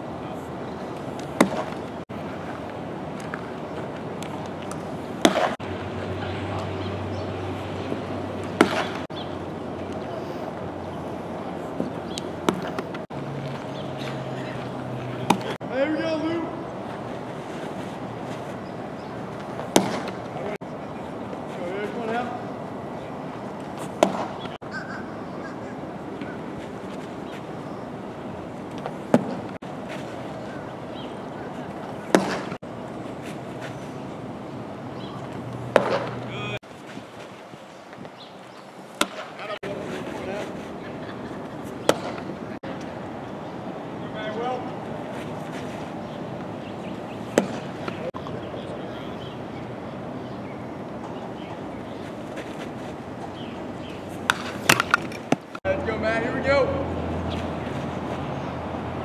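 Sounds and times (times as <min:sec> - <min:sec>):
outdoor background noise: 0:00.0 - 0:59.0
baseball smacking into catcher's mitt: 0:01.2 - 0:01.8, 0:04.7 - 0:05.6, 0:08.5 - 0:09.0, 0:19.5 - 0:20.2, 0:23.9 - 0:24.4, 0:32.1 - 0:32.6, 0:35.7 - 0:36.2, 0:41.8 - 0:42.3, 0:47.3 - 0:48.0, 0:54.2 - 0:55.5
faint voices: 0:47.6 - 0:50.1.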